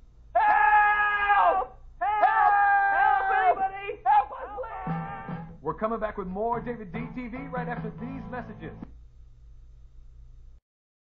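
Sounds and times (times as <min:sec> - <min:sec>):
people screaming: 0:00.4 - 0:05.5.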